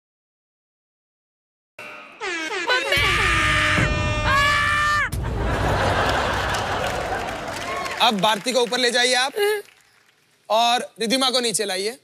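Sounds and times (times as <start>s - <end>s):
horn-like blast: 1.8s - 5.2s.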